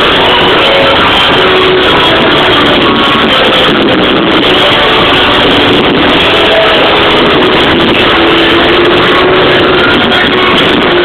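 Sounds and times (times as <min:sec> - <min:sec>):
distorted live rock band: 0:00.0 - 0:11.0.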